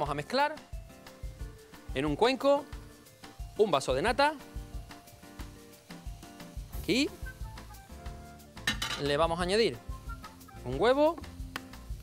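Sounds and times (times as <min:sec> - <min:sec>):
background music with low beat: 0:00.0 - 0:12.0
burst of hiss: 0:05.0 - 0:07.8.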